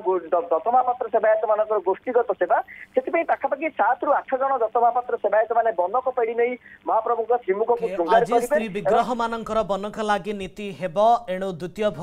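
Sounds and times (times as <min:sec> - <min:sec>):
man speaking over a phone line: 0:00.0 - 0:09.5.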